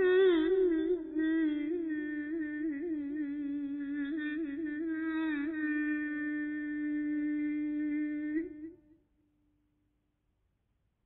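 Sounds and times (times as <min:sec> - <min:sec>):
person singing long held note: 0:00.0 - 0:08.8.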